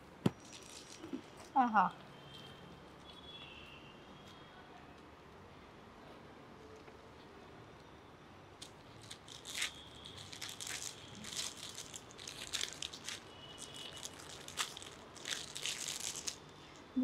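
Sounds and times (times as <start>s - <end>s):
plastic wrapping crinkling: 0.4s - 1.5s, 8.6s - 16.8s.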